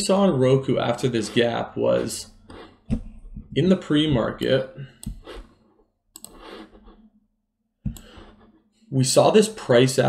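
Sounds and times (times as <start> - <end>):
computer mouse clicks: 5.0 - 5.5, 6.2 - 6.8, 7.9 - 8.4.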